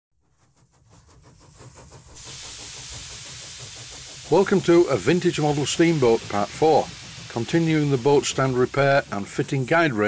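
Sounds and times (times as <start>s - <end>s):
steam engine rumble with beats: 0.2s - 10.0s
hiss of escaping steam: 0.8s - 10.0s.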